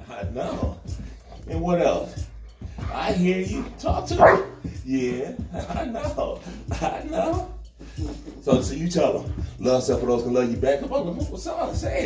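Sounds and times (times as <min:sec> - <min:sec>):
dog woofing: 0:03.7 - 0:04.6.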